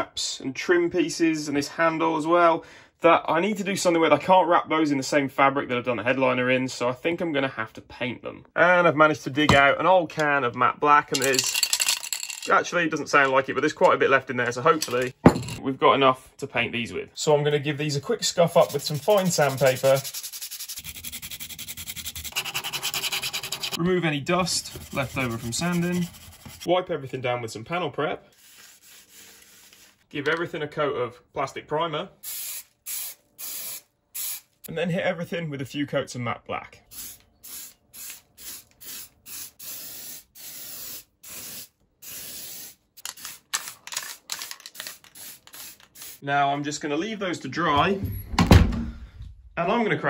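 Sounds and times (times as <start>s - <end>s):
sandpaper rubbing on plastic: 18.2s - 23.8s, 24.4s - 26.7s, 28.3s - 30.0s
spray paint can hissing bursts: 18.6s - 23.8s, 32.2s - 34.5s, 36.9s - 46.2s.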